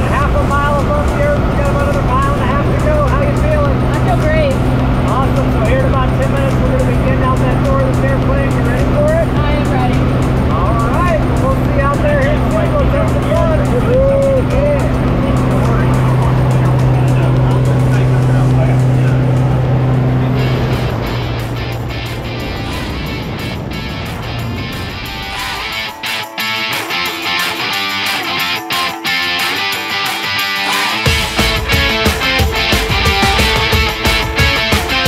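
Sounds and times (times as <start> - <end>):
airplane engine and propeller drone: 0.0 - 28.4
music playing: 0.0 - 35.0
wind rushing: 19.2 - 26.2.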